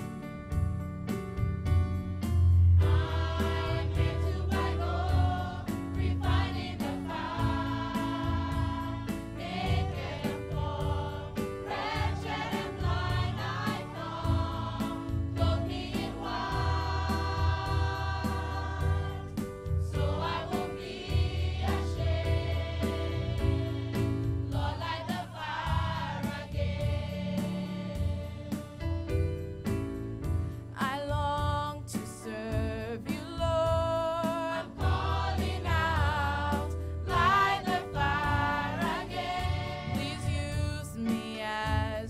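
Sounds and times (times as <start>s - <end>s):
steady drum beat: 0.0s - 42.0s
gospel choir singing: 2.8s - 29.0s, 34.0s - 41.8s.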